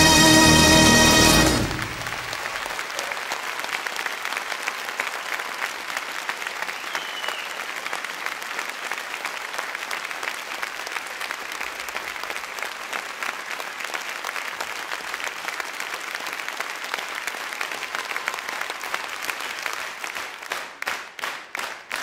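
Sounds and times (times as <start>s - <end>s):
audience applauding: 0.0s - 22.0s.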